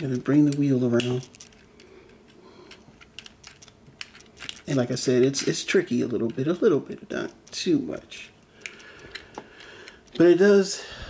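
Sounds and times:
plastic toy parts clicking: 0.4 - 1.9, 2.7 - 4.8, 7.2 - 10.2.

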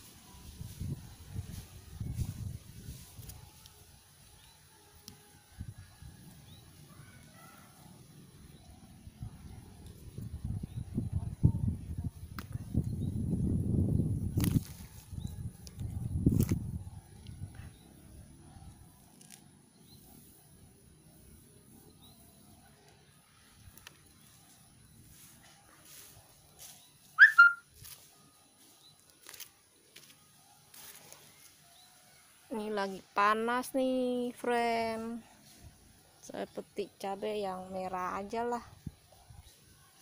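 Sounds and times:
loud high chirp: 27.2 - 27.7.

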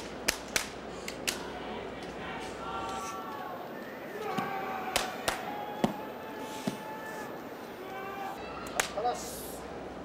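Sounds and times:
murmur of arena crowd: 0.0 - 10.0.

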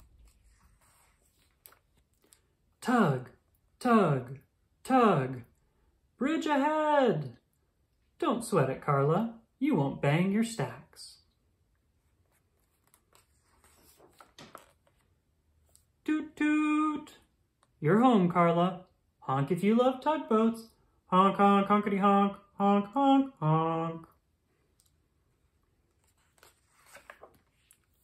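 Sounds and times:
book page turning: 0.0 - 2.6, 12.1 - 16.0, 25.7 - 28.0.

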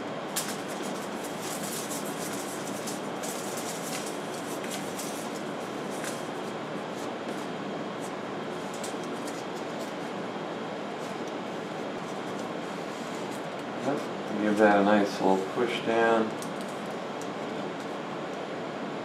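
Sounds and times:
steady rushing background noise: 0.0 - 18.1
foil tape crinkling: 0.3 - 7.1, 8.6 - 10.1.

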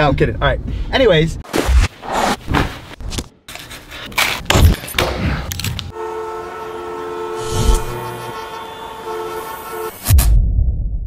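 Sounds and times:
held horn-like chord: 5.9 - 10.0.

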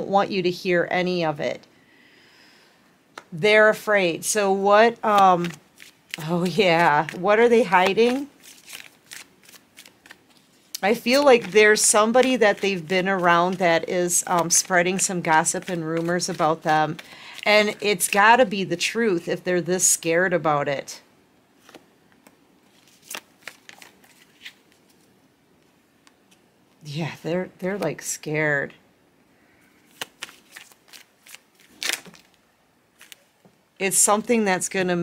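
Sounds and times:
cards being shuffled: 5.0 - 18.3, 21.6 - 25.2, 29.8 - 32.4, 33.0 - 33.5.

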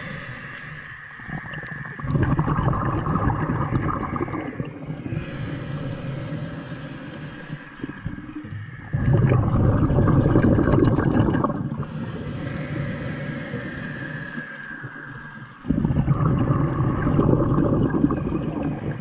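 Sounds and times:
underwater churning and gurgling: 0.0 - 19.0.

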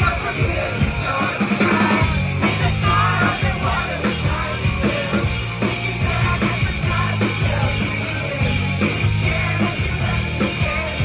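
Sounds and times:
live punk rock band: 0.0 - 11.0.

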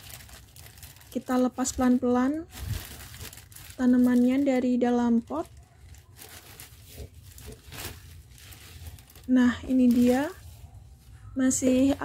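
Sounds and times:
rustling of soil and roots: 0.0 - 12.0.

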